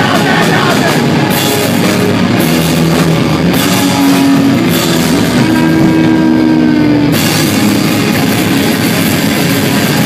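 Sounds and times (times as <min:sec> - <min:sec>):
bass guitar: 0:00.0 - 0:10.0
distorted electric guitars: 0:00.0 - 0:10.0.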